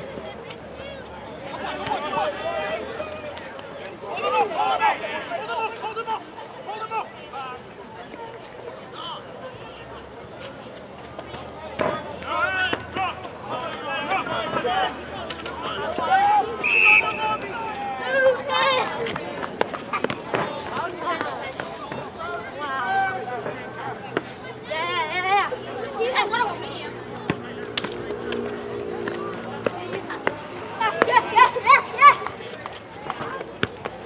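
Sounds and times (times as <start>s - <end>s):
players shouting: 0.0s - 10.0s, 11.7s - 34.0s.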